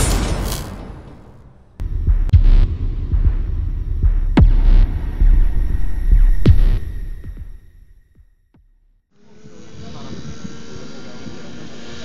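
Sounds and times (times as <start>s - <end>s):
heavy booming hits: 0.0s - 7.9s
deep rumbling bass: 1.8s - 8.0s.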